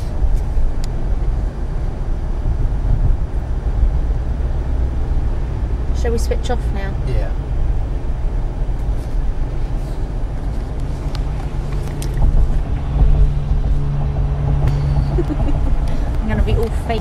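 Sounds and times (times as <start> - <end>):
car engine and tyres rumbling: 0.0 - 17.0.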